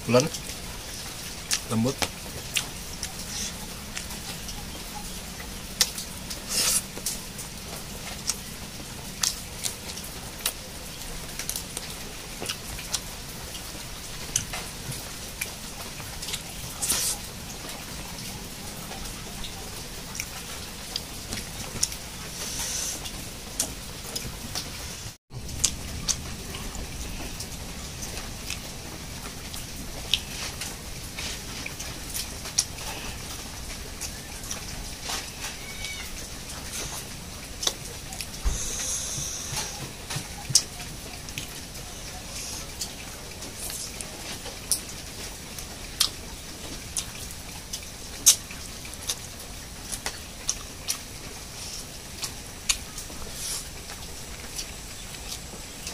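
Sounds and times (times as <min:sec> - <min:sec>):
steady background hiss: 0:00.0 - 0:55.9
person chewing: 0:01.5 - 0:04.2, 0:05.8 - 0:07.2, 0:16.2 - 0:17.8, 0:20.1 - 0:24.3, 0:29.5 - 0:33.4, 0:36.6 - 0:39.8, 0:47.7 - 0:48.4, 0:49.9 - 0:53.9
mouth clicks and smacks: 0:47.7 - 0:49.2.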